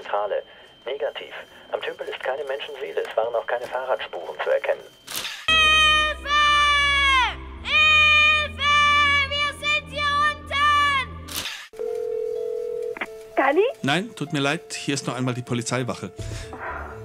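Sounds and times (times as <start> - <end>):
telephone dial tone: 11.8 - 13.2.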